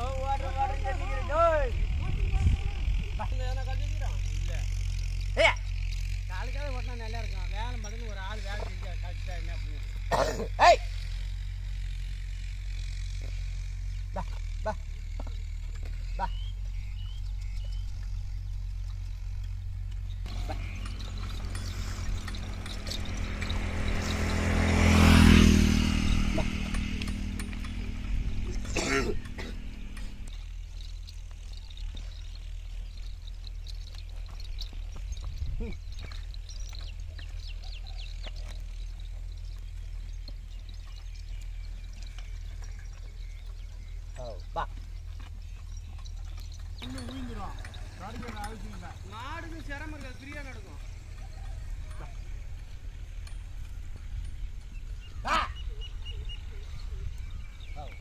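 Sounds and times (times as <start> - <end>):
man calling to bullocks: 0.0 - 2.0, 3.2 - 5.7, 6.3 - 11.0, 14.1 - 15.0, 16.1 - 16.6, 35.5 - 35.9, 44.2 - 44.9, 46.8 - 50.9, 55.2 - 56.0
passing engine: 0.0 - 58.0
low rumble: 16.5 - 37.4.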